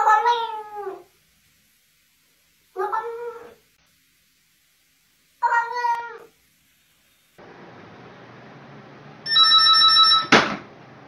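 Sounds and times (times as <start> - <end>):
cat yowling: 0.0 - 1.1, 2.8 - 3.6, 5.4 - 6.4.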